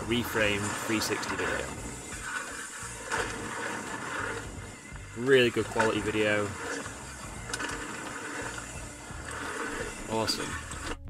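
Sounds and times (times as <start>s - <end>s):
tyres on a dirt trail: 0.0s - 11.0s.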